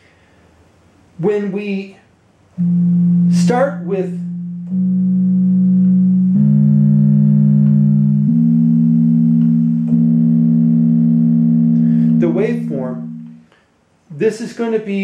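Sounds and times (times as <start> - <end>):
man speaking: 1.2 - 2.0, 3.3 - 4.2, 12.2 - 13.2, 14.1 - 15.0
synthesizer low notes: 2.6 - 13.5.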